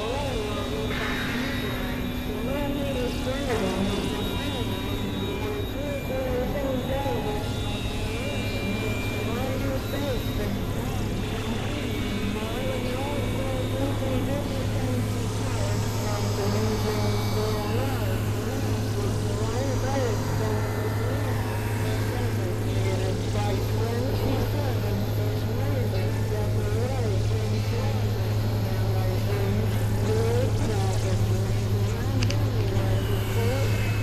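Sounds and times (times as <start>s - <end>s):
dense noisy texture: 0.0s - 34.0s
low synthesizer drone: 0.0s - 34.0s.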